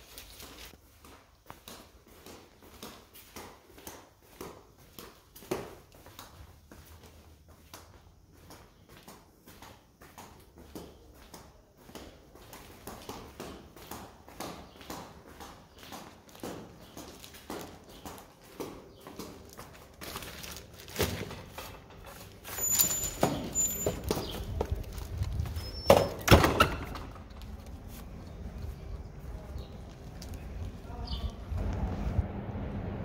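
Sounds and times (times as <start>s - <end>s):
footsteps on stone floor: 0.0s - 31.9s
heavy wooden door opening: 21.0s - 24.9s, 25.5s - 27.6s.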